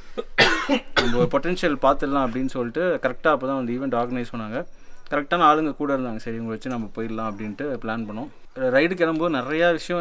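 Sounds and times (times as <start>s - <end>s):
man coughing: 0.2s - 1.4s
man talking: 1.0s - 10.0s.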